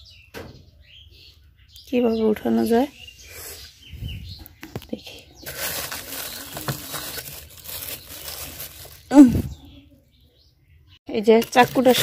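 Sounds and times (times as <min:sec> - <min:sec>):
plastic bags rustling: 0:05.4 - 0:09.7, 0:11.2 - 0:12.0.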